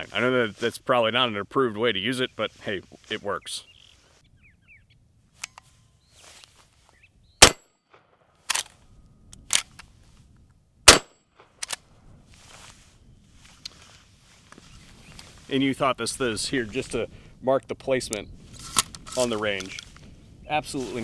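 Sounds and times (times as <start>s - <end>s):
shotgun shots: 7.4s - 8.6s, 10.9s - 11.5s.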